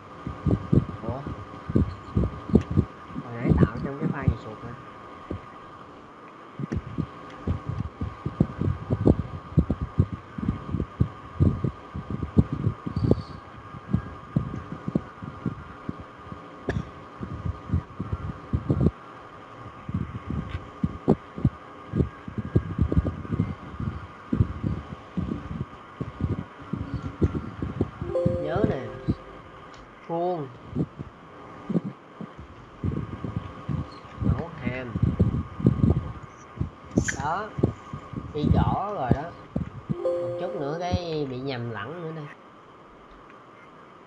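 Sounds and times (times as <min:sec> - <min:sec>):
steady thin hum: 0:28.0 - 0:30.2.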